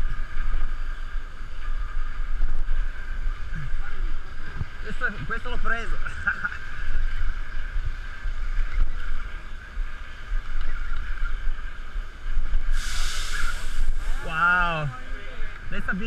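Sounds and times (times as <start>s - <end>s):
wind and water rumble: 0.0s - 16.0s
brief rushing hiss: 12.7s - 14.3s.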